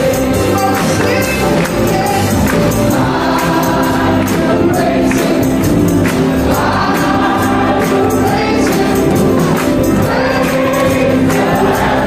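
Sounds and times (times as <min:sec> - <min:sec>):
man and woman singing: 0:00.0 - 0:05.6, 0:06.5 - 0:09.3
gospel band playing: 0:00.0 - 0:12.0.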